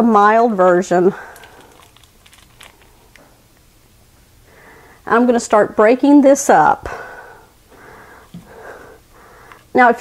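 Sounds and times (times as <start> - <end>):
plastic wrapper crinkling: 1.2 - 3.3.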